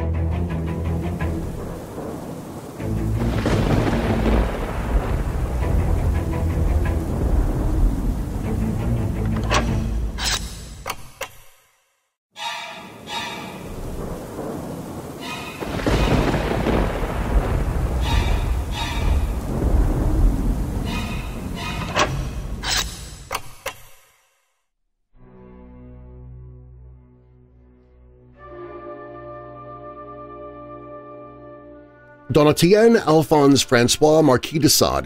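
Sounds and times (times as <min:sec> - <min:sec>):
rain falling: 0:00.0 - 0:10.2, 0:13.0 - 0:23.3
thunder rolling: 0:00.3 - 0:10.2, 0:12.9 - 0:23.3.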